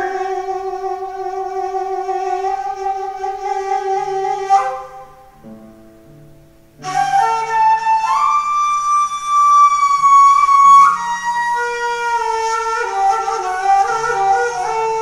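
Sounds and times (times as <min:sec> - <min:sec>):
wooden flute melody: 0:00.0 - 0:05.6, 0:06.8 - 0:15.0.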